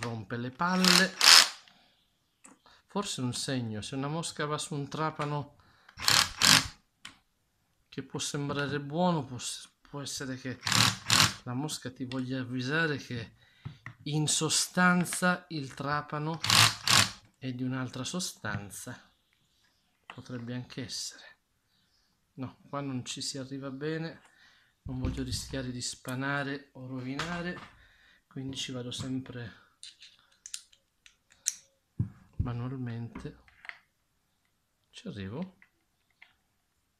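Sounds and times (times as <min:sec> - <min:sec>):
drill clutch ratcheting: 0:00.8 - 0:01.6, 0:06.0 - 0:06.8, 0:10.6 - 0:11.4, 0:16.4 - 0:17.2
screwdriver metallic clicks: 0:29.8 - 0:31.7.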